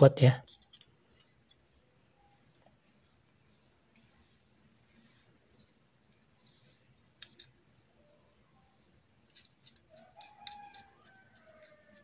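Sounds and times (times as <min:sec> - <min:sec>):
clicks of small parts handled: 0:00.4 - 0:01.6
rooster crowing: 0:09.9 - 0:12.0.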